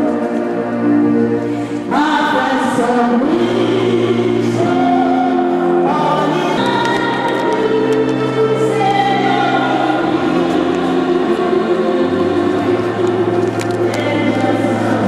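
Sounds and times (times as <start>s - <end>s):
choir singing slow chords: 0.0s - 15.0s.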